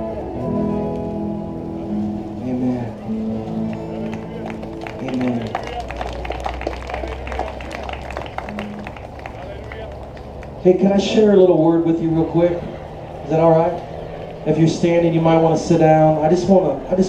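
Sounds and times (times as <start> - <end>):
keyboard and guitar chords: 0.0 - 17.0.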